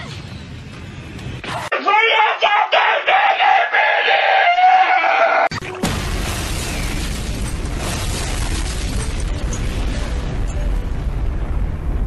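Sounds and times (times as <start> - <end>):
cartoon character high-pitched scream: 1.8 - 5.5.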